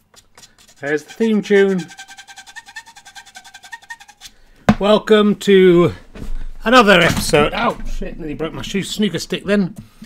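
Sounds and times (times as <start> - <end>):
quiet theme tune with fast pulse: 0.8 - 4.3.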